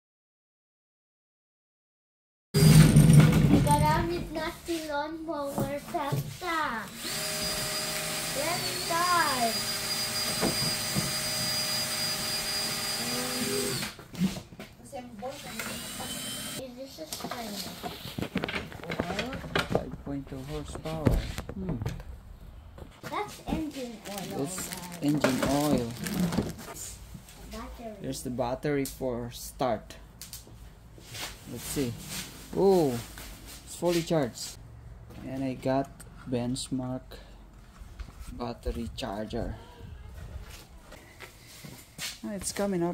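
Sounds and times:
child's voice: 0:03.3 - 0:07.0, 0:08.4 - 0:09.6, 0:14.8 - 0:18.0, 0:23.0 - 0:25.1, 0:27.4 - 0:28.1, 0:39.4 - 0:40.9
plastic packaging rustling: 0:23.7 - 0:27.0
man's voice: 0:24.3 - 0:26.2.

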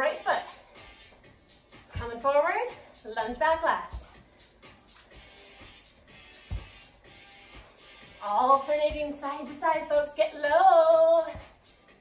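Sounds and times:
faint workout music: 0:00.0 - 0:12.0.

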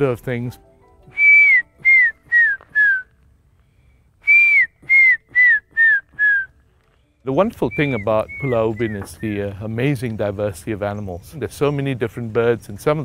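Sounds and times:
man whistling short notes: 0:01.1 - 0:03.1, 0:04.2 - 0:06.6, 0:07.6 - 0:09.3.

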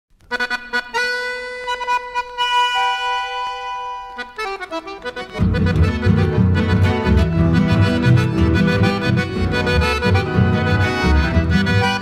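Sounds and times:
accordion chords: 0:00.2 - 0:12.0.

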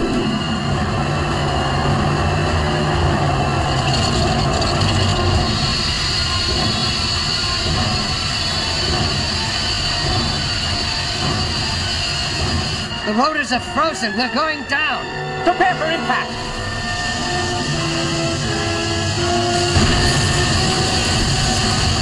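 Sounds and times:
helicopter mechanical rumble: 0:00.0 - 0:22.0
high whine: 0:00.0 - 0:22.0
hiss of wind and sleet: 0:16.6 - 0:22.0.

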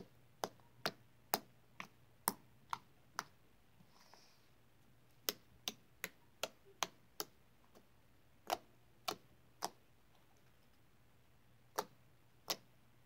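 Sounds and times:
slime clicking and popping: 0:05.2 - 0:09.8.

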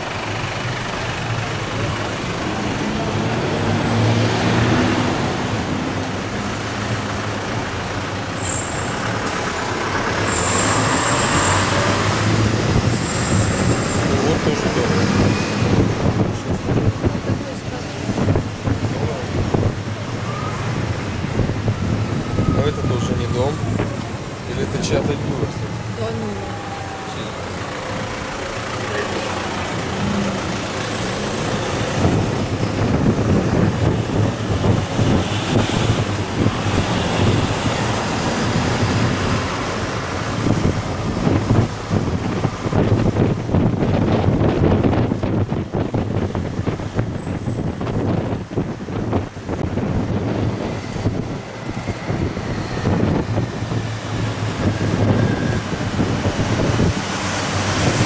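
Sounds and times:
bus engine running: 0:00.0 - 0:58.0
city traffic: 0:00.0 - 0:58.0
wind buffeting microphone: 0:12.0 - 0:26.4, 0:31.7 - 0:58.0.

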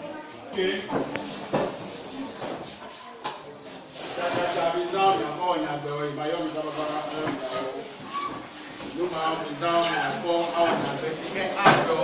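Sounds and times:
students chattering: 0:00.0 - 0:12.0.

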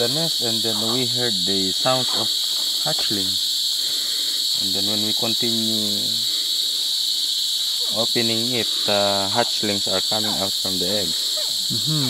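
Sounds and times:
high-pitched night insects chorus: 0:00.0 - 0:12.0.

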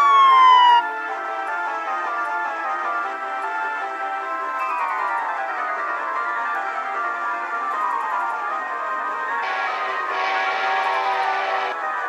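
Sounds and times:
police siren: 0:00.0 - 0:12.0
background music with held chords: 0:00.8 - 0:12.0.

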